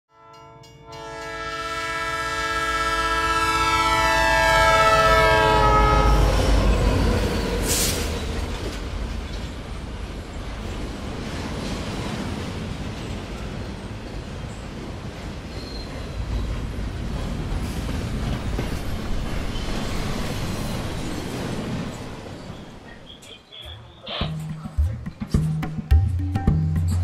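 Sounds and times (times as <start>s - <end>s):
train horn chord: 0.1s - 6.4s
train rumbling past: 0.6s - 25.9s.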